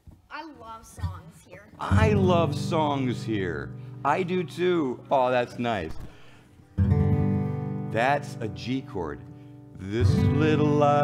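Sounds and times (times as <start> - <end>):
acoustic guitar chord ringing: 1.8 - 11.0.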